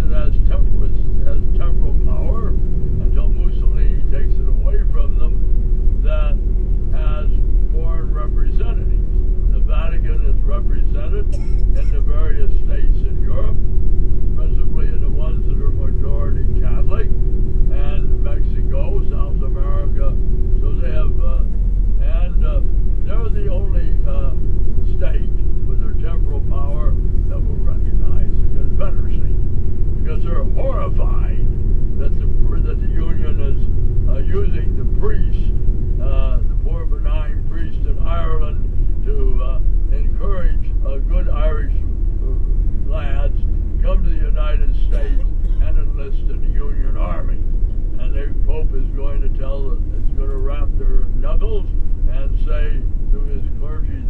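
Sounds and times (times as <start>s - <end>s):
vehicle rumbling: 0.0s - 54.0s
indistinct talking: 6.0s - 13.6s, 14.4s - 29.4s, 30.0s - 54.0s.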